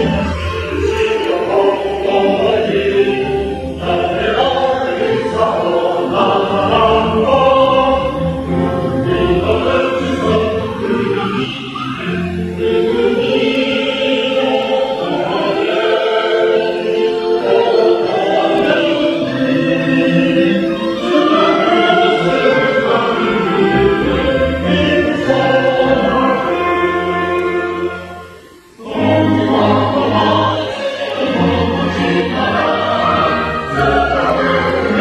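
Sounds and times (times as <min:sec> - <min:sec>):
choir singing: 0:00.0 - 0:35.0.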